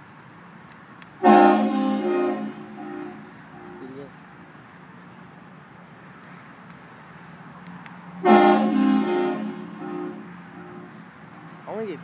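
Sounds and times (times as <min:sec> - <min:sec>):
air horn blast: 0:01.2 - 0:04.0, 0:08.2 - 0:11.0.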